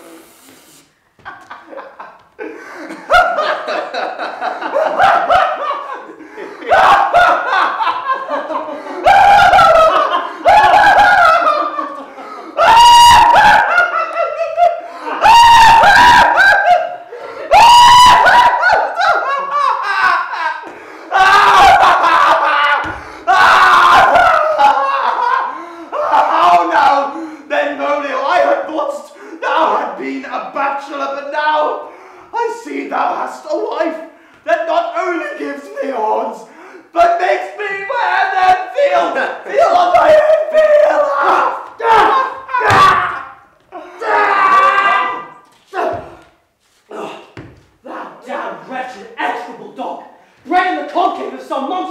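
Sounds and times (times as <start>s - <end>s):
people laughing and jeering: 1.2s - 46.3s
people screaming: 6.6s - 27.2s, 37.7s - 46.2s.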